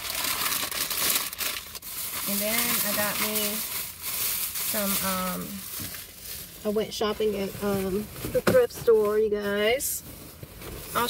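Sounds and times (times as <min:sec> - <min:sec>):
shopping bag crinkling and rustling: 0:00.0 - 0:11.0.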